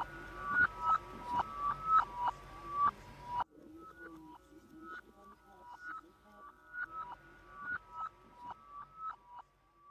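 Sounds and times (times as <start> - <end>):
ambient electronic beeping music: 0.0 - 9.9.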